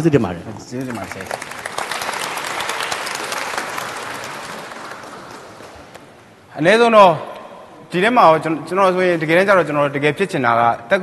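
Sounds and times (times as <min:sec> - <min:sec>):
audience applause: 0:00.8 - 0:06.2.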